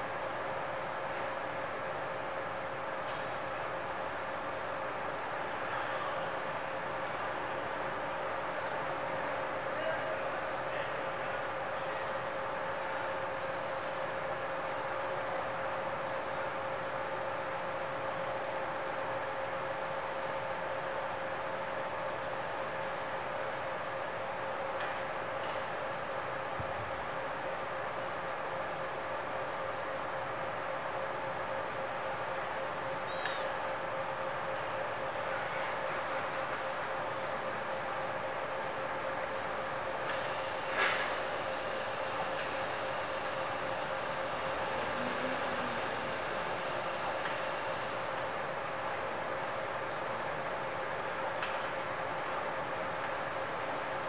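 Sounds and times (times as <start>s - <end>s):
background hum and hiss: 0.0s - 54.0s.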